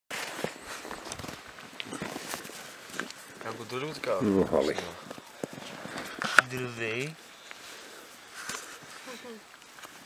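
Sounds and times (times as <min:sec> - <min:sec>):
footsteps crunching on snow: 0:00.1 - 0:10.0.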